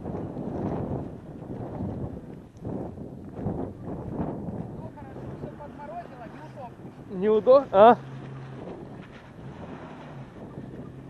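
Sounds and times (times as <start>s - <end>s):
wind buffeting microphone: 0.0s - 11.0s
vehicle engine humming: 4.4s - 11.0s.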